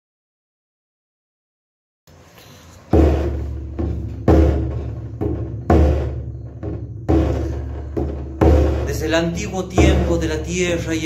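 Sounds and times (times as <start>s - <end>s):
frame drum beaten in slow rhythm: 2.9s - 11.0s.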